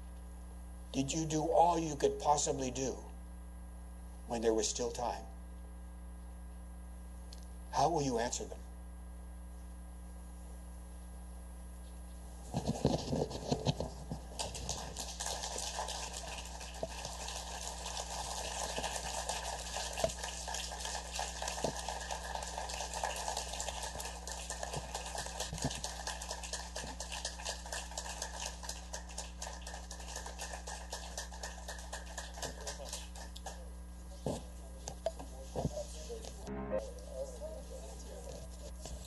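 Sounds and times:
audience applauding: 14.4 - 33.7.

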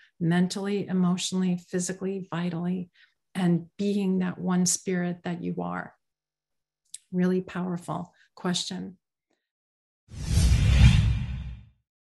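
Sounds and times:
whoosh: 10.1 - 11.8
deep rumble: 10.2 - 11.7.

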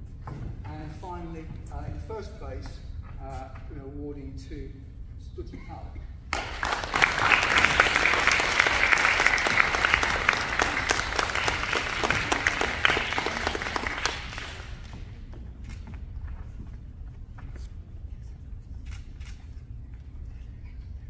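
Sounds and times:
audience applauding: 6.3 - 15.2.

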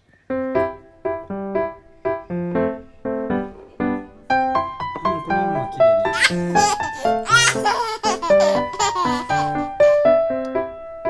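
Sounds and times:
light piano music: 0.0 - 11.0.

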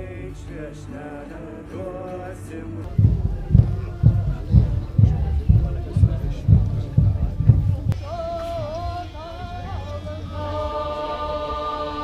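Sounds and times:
man singing folk melody: 0.0 - 7.0
music with heavy bass-drum beat: 2.9 - 11.0.

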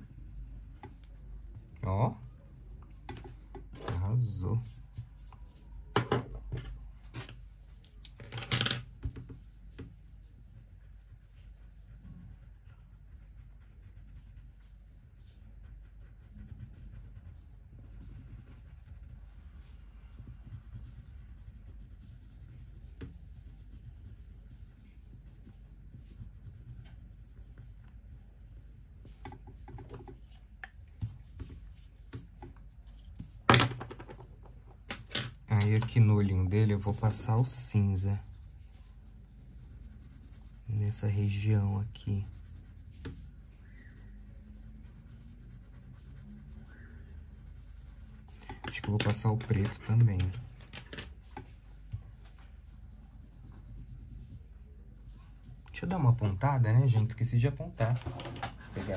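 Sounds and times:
pencil scratching on paper: 0.0 - 2.1, 3.0 - 5.8, 9.0 - 33.6, 35.5 - 50.4, 51.1 - 56.4
pencils clicking and scratching: 0.0 - 9.9, 28.8 - 38.8, 39.6 - 52.4
pencils rattling: 7.9 - 8.9, 48.4 - 51.1.

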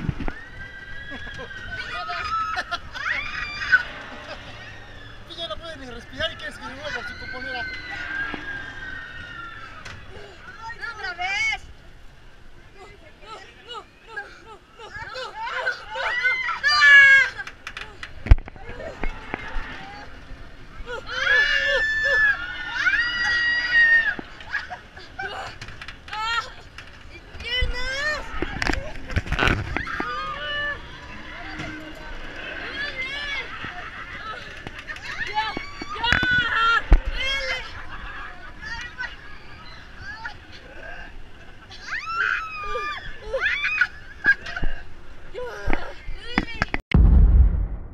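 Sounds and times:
wind rush on microphone: 0.0 - 0.4
riders yelling and screaming: 0.3 - 11.5, 13.3 - 46.5
roller coaster clicks: 17.0 - 19.7, 25.5 - 30.4, 31.0 - 37.4
loud deep boom: 46.9 - 47.9.

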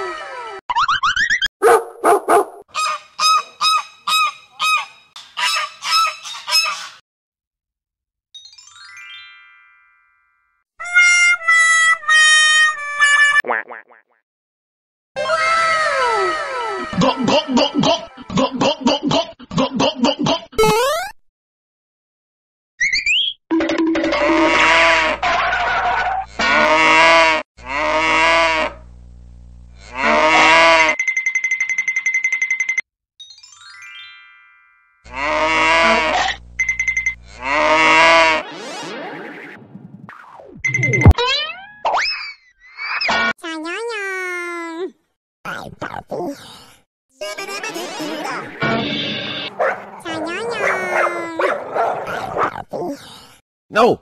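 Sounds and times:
dog barking: 1.6 - 2.6, 49.5 - 52.6
cows mooing: 35.1 - 36.3, 49.5 - 52.4
high tone pulsing rapidly: 40.6 - 41.2
dog long drawn-out call: 49.6 - 52.2.

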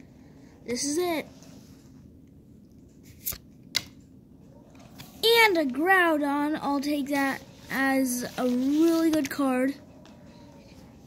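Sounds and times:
cards being handled and flipped: 2.8 - 4.1, 7.6 - 9.5
sharp card snaps: 3.2 - 4.0.

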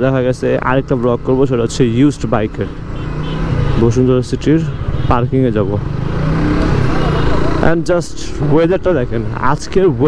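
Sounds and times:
man talking: 0.0 - 2.8, 3.8 - 5.9, 7.6 - 10.0.

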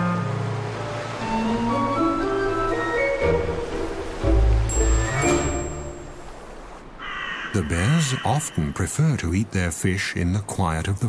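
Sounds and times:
crow cawing harshly: 7.0 - 8.6
man narrating: 7.5 - 11.0.

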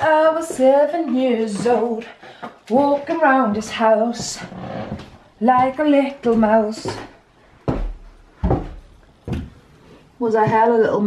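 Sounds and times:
dull thumps: 2.8 - 9.6.

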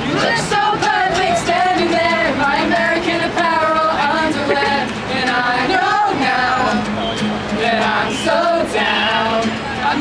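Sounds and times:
strummed acoustic guitar: 0.0 - 10.0
voices singing along: 0.0 - 10.0
man singing: 7.6 - 10.0.

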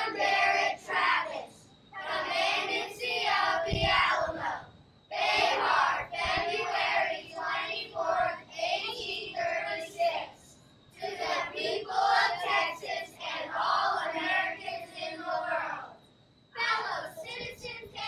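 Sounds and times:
children singing unaccompanied: 0.0 - 16.0, 16.6 - 18.0.

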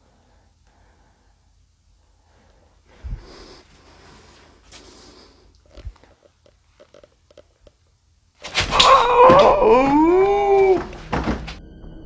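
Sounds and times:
loud long wailing cry: 8.7 - 11.0.

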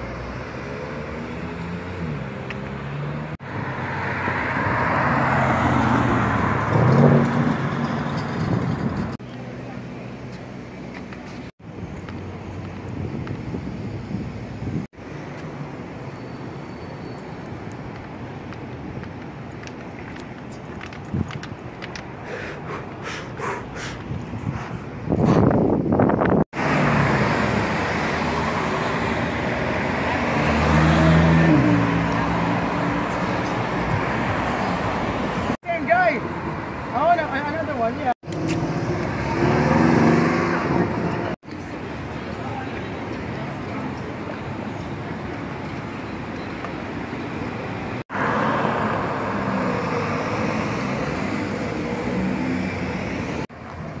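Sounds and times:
cars driving past: 0.0 - 11.4, 25.1 - 35.6, 36.2 - 54.0
quieter street traffic: 0.0 - 54.0
road and tyre noise: 0.0 - 54.0
car engine driving through junction: 25.4 - 35.6
car accelerating: 38.3 - 41.4.

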